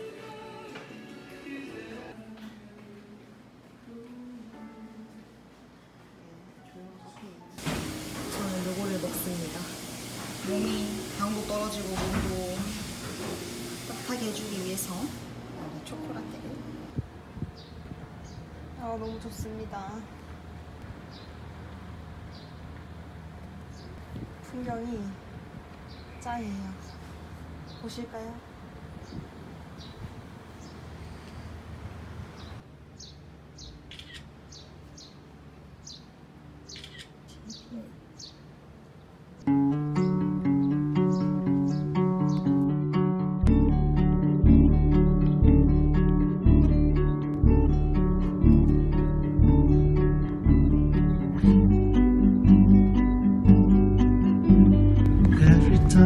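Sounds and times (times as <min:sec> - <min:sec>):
faint music: 0:00.0 - 0:20.4, 0:35.2 - 0:56.0
people talking: 0:08.3 - 0:09.8, 0:10.4 - 0:12.8, 0:13.9 - 0:16.9, 0:18.8 - 0:20.1, 0:24.4 - 0:25.2, 0:26.2 - 0:26.9, 0:27.8 - 0:28.4, 0:55.3 - 0:56.0
bird calls: 0:32.3 - 0:35.2, 0:35.8 - 0:38.4
swallow chirping: 0:36.7 - 0:38.4.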